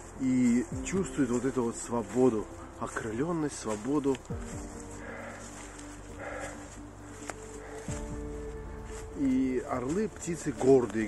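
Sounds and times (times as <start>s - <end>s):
music of long held notes: 0.0s - 11.0s
animal-like call: 4.8s - 8.5s.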